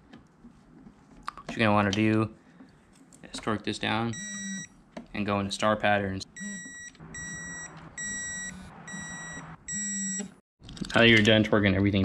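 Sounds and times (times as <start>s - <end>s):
torque wrench high beeps: 6.4s - 10.4s.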